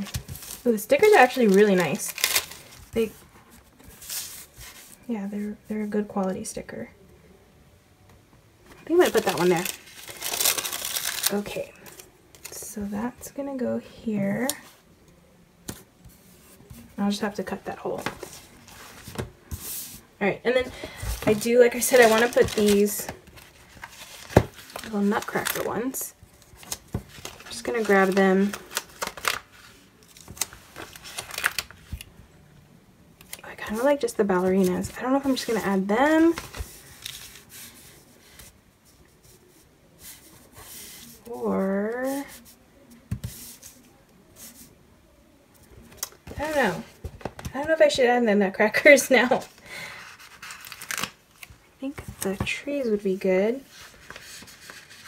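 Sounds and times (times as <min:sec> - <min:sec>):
paper rustling: 0:00.0 - 0:05.1, 0:09.0 - 0:12.6, 0:18.0 - 0:20.0, 0:20.6 - 0:32.1, 0:33.6 - 0:41.4, 0:49.2 - 0:52.5, 0:53.7 - 0:55.0
paper pages sliding on table: 0:18.0 - 0:20.0.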